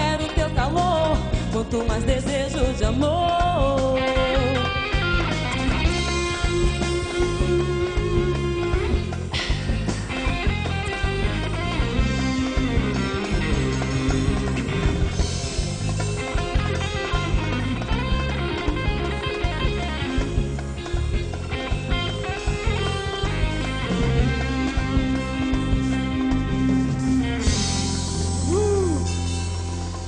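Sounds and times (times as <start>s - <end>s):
electric guitar melody: 0.0s - 30.0s
live band playing pop music: 0.0s - 30.0s.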